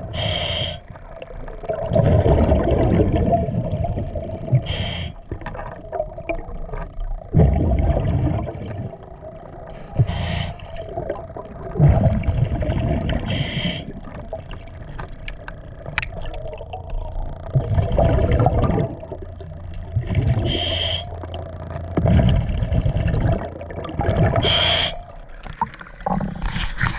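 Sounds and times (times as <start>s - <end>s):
exhaled bubbles burbling: 0.0s - 26.9s
regulator inhalation hiss: 0.2s - 0.9s, 4.7s - 5.2s, 9.8s - 10.8s, 13.3s - 13.9s, 20.5s - 21.2s, 24.4s - 25.0s.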